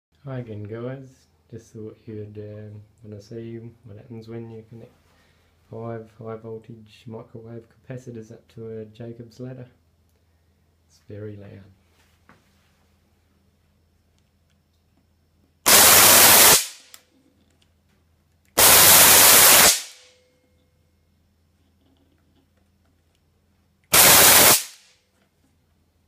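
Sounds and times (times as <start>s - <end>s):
faint low hum: 0.1s - 15.7s, 16.9s - 18.6s, 20.0s - 24.0s, 24.9s - 26.0s
harsh crackling electric arc: 15.7s - 17.0s, 18.6s - 20.1s, 23.9s - 24.9s.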